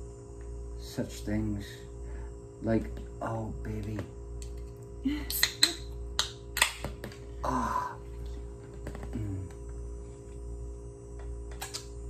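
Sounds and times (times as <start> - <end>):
person humming: 7.3 - 8.1, 8.9 - 9.7.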